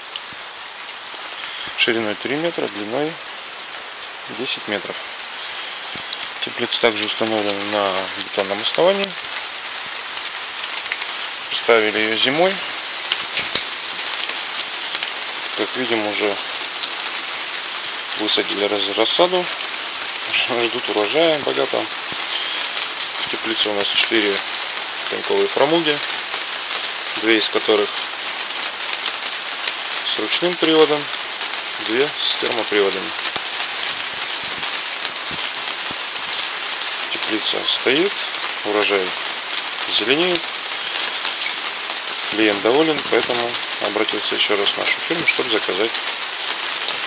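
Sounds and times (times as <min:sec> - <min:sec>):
rain on plastic roof: 0:00.0 - 0:47.0.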